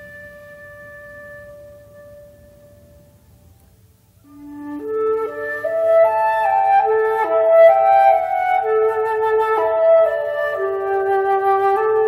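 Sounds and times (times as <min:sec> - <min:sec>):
long held woodwind note: 0:00.0 - 0:03.5, 0:04.2 - 0:12.0.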